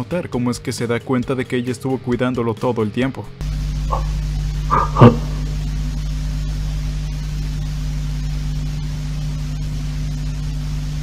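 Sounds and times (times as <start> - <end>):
steady low hum: 3.4 - 11.0.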